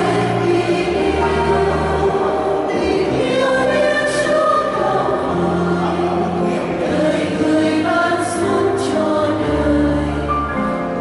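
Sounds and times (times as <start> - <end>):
choir singing a hymn in harmony: 0.0 - 11.0.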